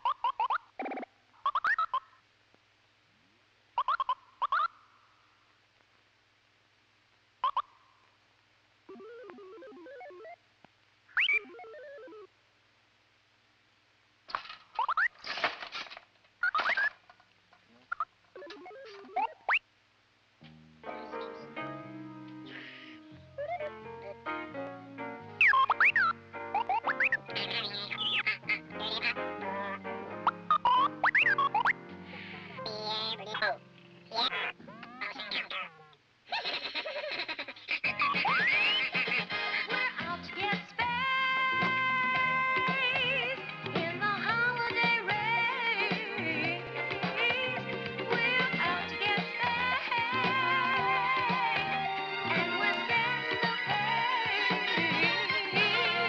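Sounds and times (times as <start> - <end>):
faint steady hum: 0.0 - 38.0
playful comic music: 8.9 - 10.4, 11.2 - 12.3, 20.9 - 35.9, 37.9 - 40.5
robot beeps and warbles: 8.9 - 10.4, 11.2 - 12.3, 17.9 - 19.6, 25.4 - 31.8.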